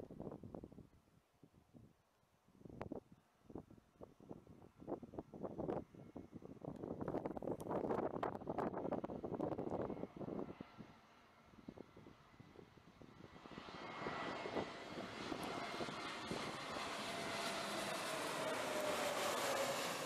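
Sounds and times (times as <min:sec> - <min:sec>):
wind buffeting microphone: 0:00.0 - 0:02.0, 0:02.7 - 0:20.0
jet engines hissing with whine: 0:08.6 - 0:20.0.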